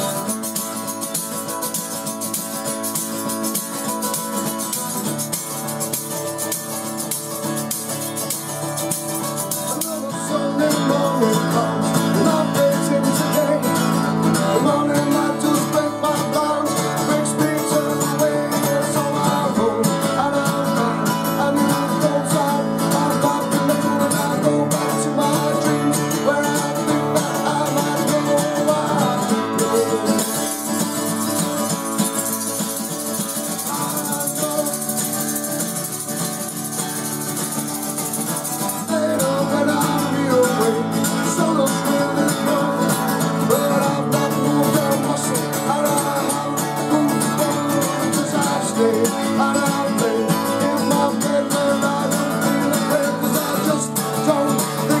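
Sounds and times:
acoustic guitar strumming: 0.0 - 55.0
man singing: 0.0 - 55.0
tambourine jingle: 0.0 - 55.0.

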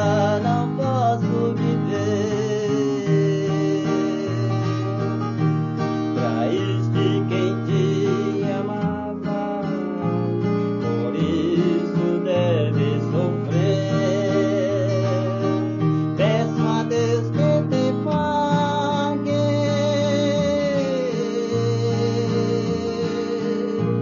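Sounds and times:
fingerstyle classical guitar: 0.0 - 24.0.

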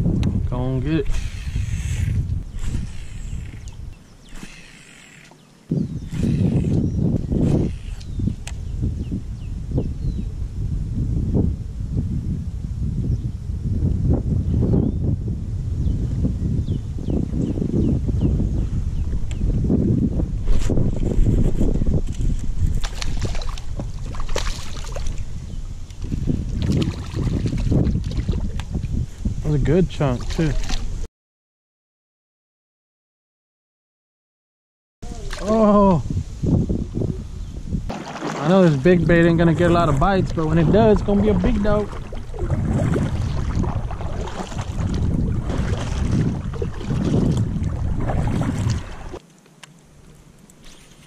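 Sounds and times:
wind rumbling on microphone: 0.0 - 31.1, 35.0 - 51.0
water sloshing: 20.5 - 28.7, 30.0 - 30.9, 37.9 - 49.2
fish splashing at surface: 22.8 - 25.2, 37.9 - 38.7, 41.4 - 49.2.

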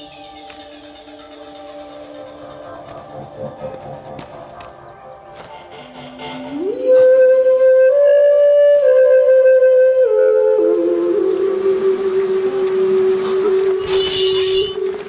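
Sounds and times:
soft background score: 0.0 - 15.0
flute sliding up: 6.4 - 15.0.

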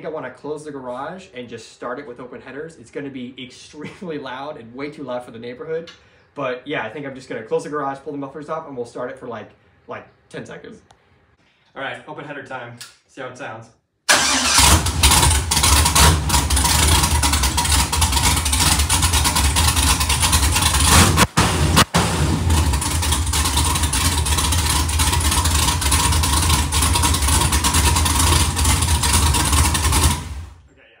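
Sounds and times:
loud car engine running: 14.6 - 30.6.

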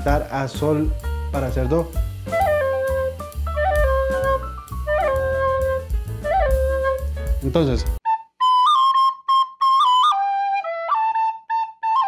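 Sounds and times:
backing track with bass and drums: 0.0 - 8.0
soprano recorder playing: 2.3 - 7.2, 8.0 - 12.0.

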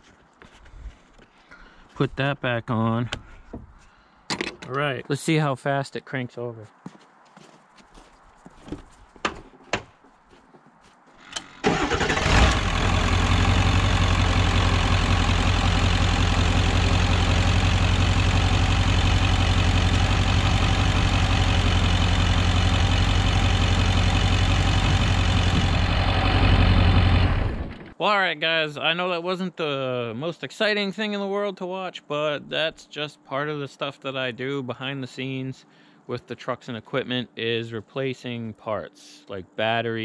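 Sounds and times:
diesel engine cranking and idling: 11.2 - 28.0.

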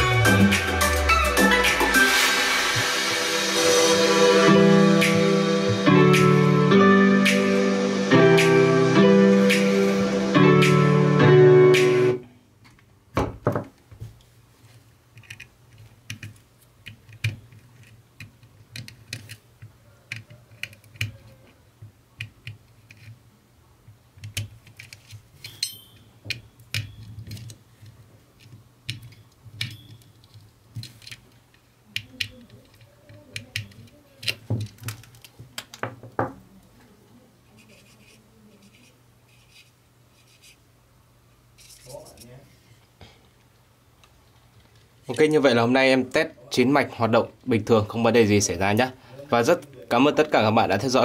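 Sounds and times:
hands clicking and knocking on circuit board: 15.1 - 23.2, 23.9 - 25.6, 28.4 - 31.2, 32.0 - 36.3.

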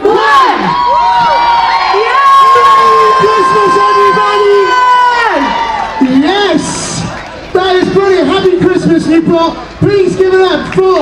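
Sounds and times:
person shouting: 0.0 - 0.8
crowd cheering: 0.0 - 11.0
man cheering through pa system: 1.9 - 6.9.

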